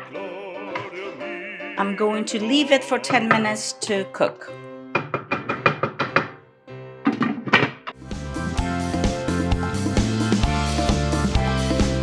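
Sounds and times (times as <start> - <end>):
background music: 0.0 - 12.0
wooden spoon knocking a pan: 3.0 - 3.7, 5.0 - 6.4.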